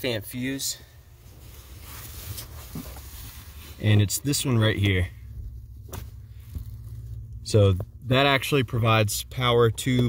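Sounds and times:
steady low hum: 0.2 - 10.0.

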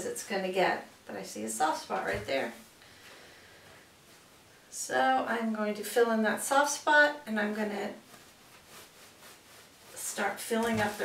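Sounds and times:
soft rustling of stuffing: 1.9 - 4.8, 7.3 - 11.0.

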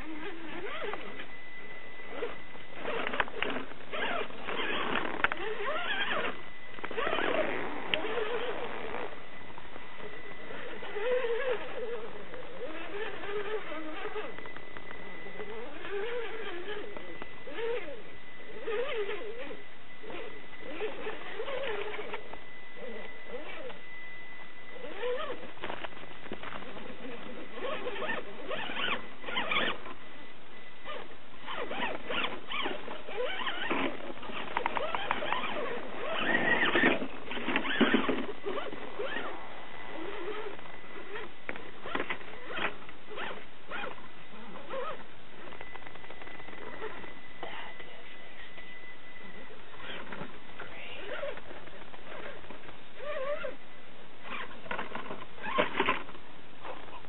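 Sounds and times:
electric motor and gears whining: 0.0 - 57.0
tyres scraping on rock: 31.5 - 39.2.

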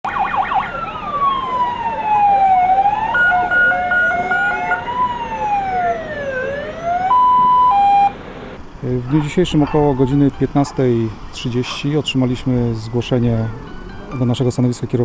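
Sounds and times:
fire engine sirens wailing: 0.0 - 14.3.

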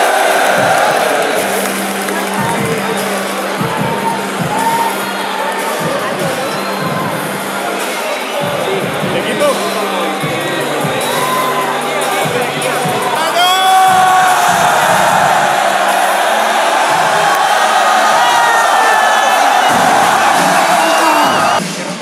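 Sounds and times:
background music: 0.0 - 22.0
crowd cheering and shouting: 0.0 - 22.0.

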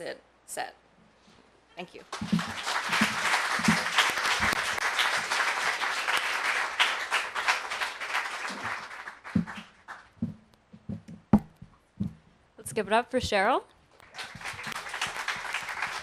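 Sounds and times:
audience applauding: 2.1 - 10.2, 14.0 - 16.0.

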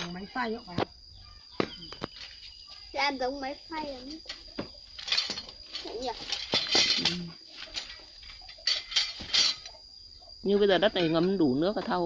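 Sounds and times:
metal parts rustling and clinking: 4.0 - 9.8.

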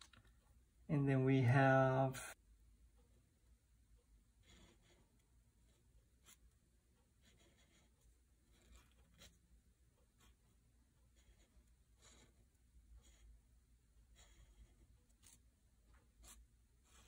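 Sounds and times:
marker pen scratching paper: 4.3 - 17.0.

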